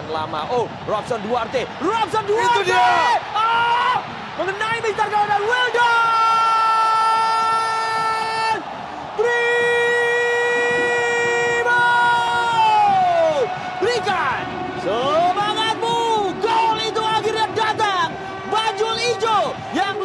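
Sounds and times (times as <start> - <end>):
stadium crowd noise: 0.0 - 20.0
commentator shouting goal: 0.2 - 8.6, 9.2 - 20.0.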